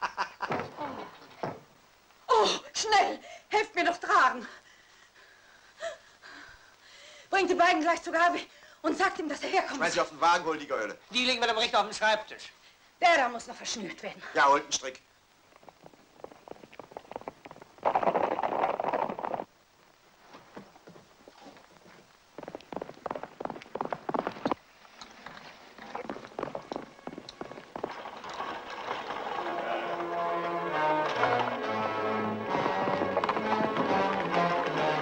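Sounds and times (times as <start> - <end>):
galloping horse hoofbeats: 15.6 - 19.5, 20.6 - 35.0
film score music: 26.2 - 35.0.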